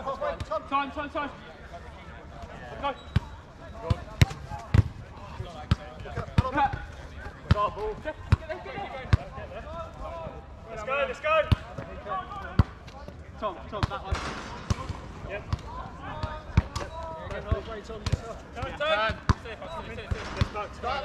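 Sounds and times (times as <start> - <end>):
football kicks and bounces: 3.8 - 5.0, 5.7 - 8.5, 20.0 - 20.6.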